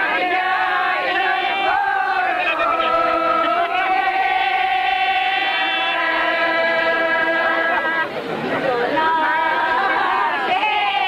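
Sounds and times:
crowd chatter: 0.0 - 11.0
group singing held note: 0.0 - 11.0.

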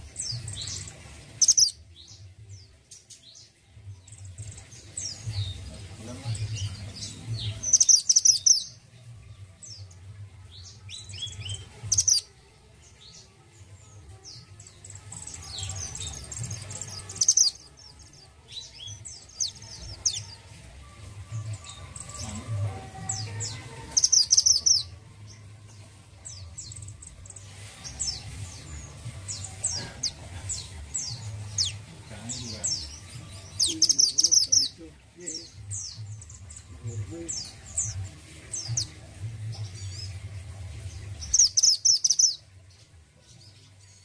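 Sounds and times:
bird chirping and singing: 0.0 - 44.0.

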